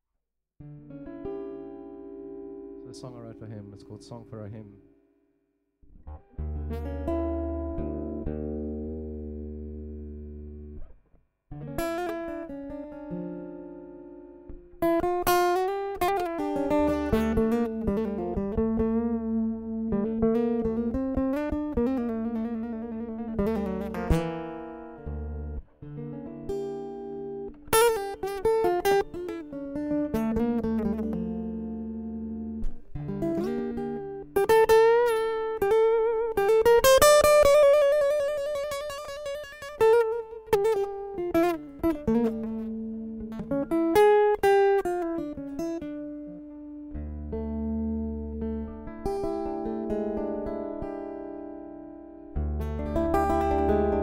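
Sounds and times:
solo guitar plucked notes and chords: 0.6 - 5.2, 5.8 - 54.0.

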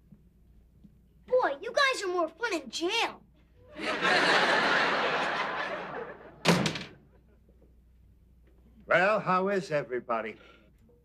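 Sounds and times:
studio audience laughing: 3.7 - 6.5
door slamming: 6.4 - 7.0.

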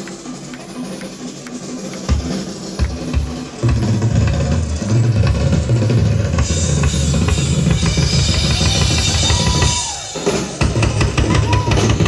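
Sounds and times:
light cymbal ticks: 0.0 - 3.2
drum solo rumble: 0.0 - 12.0.

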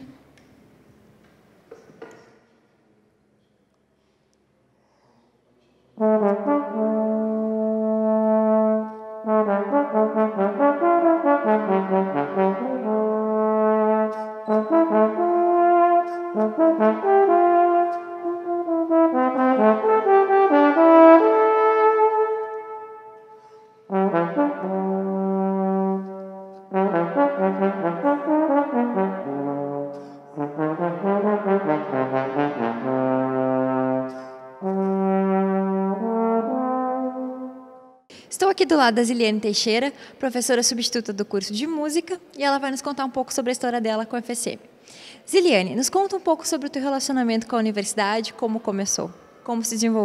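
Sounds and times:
solo trombone melody: 6.0 - 38.0.

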